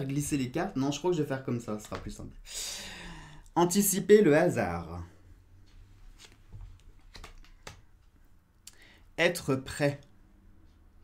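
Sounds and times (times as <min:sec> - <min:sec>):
cards clicking and sliding: 0:06.1 - 0:07.9.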